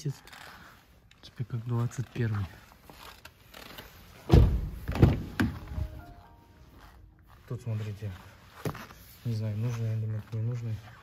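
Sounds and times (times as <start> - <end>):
car doors thudding: 4.3 - 5.8.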